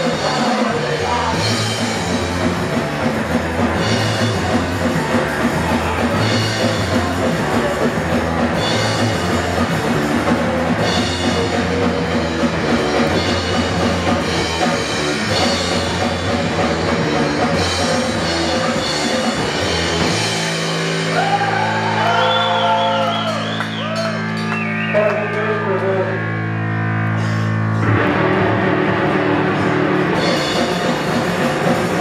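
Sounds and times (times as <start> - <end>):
punk bass and drums playing: 0.0 - 32.0.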